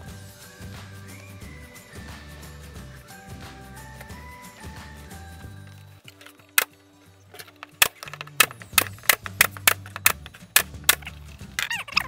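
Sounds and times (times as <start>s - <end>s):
background music: 0.0s - 12.0s
air stapler firing into plywood: 7.6s - 11.1s.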